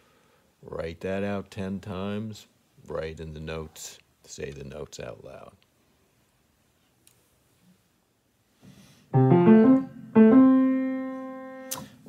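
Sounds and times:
piano phrase: 9.1s - 11.8s
sharp click: 11.6s - 12.0s.

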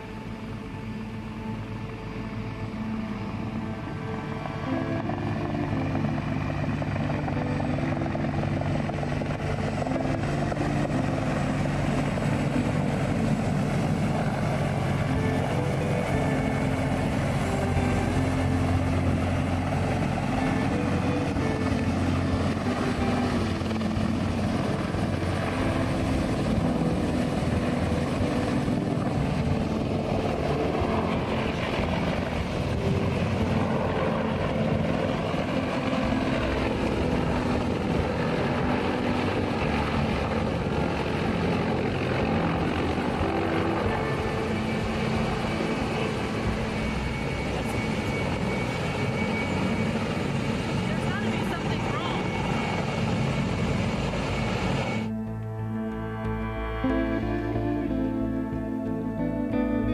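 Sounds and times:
helicopter rotor and turbines: 0.0s - 59.9s.

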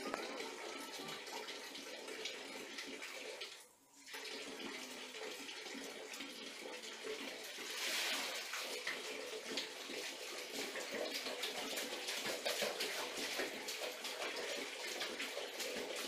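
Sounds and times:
toddler's hands slapping water: 0.0s - 3.5s, 7.6s - 16.0s
water splashing in a plastic tub: 0.0s - 16.0s.

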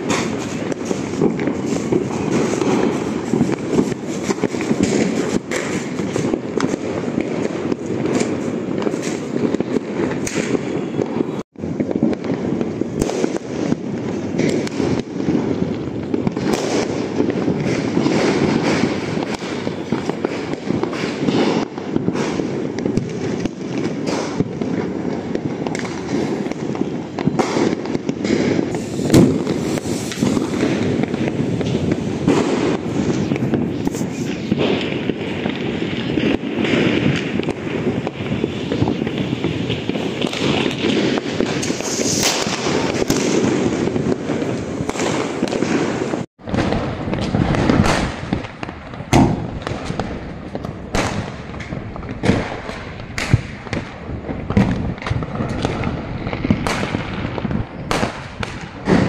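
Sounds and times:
firecrackers crackling: 0.0s - 59.0s
loud firecracker bang: 0.0s - 59.0s.

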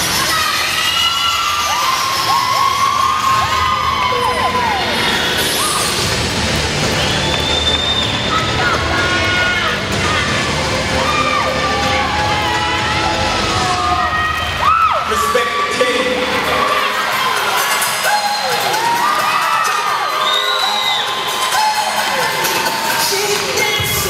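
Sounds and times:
audience cheering and shrieking: 0.0s - 24.0s
loud dance music: 0.0s - 24.0s.

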